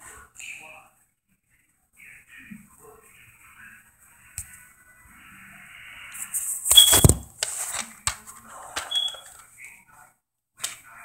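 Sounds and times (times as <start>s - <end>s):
short high beeps: 8.9s - 9.2s.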